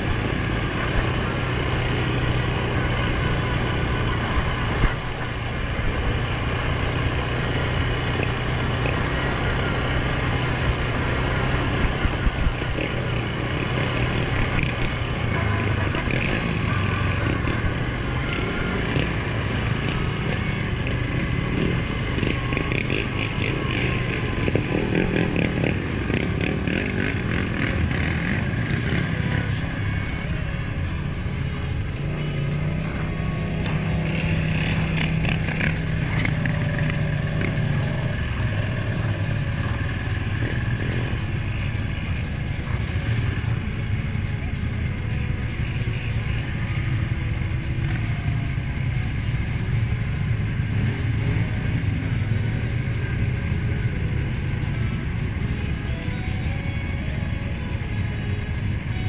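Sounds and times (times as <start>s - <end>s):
quad bike engine running: 0.0s - 59.0s.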